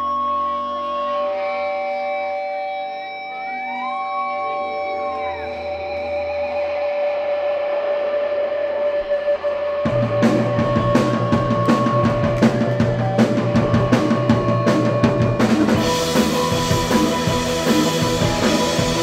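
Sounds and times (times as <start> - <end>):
sustained electric guitars: 0.0 - 19.0
sustained keyboard notes: 9.9 - 19.0.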